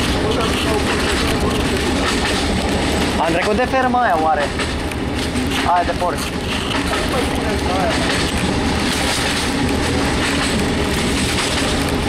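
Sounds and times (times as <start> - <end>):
railcar engine: 0.0 - 12.0
train wheels on rails: 0.0 - 12.0.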